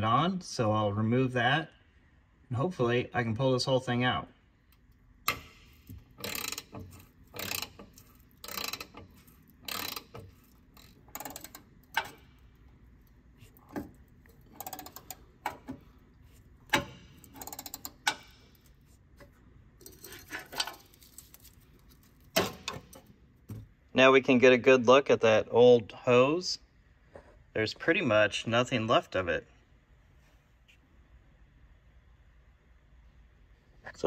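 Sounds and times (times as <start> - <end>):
ratchet wrench clicking: 5.3 - 12.6, 13.4 - 15.8, 16.7 - 18.7.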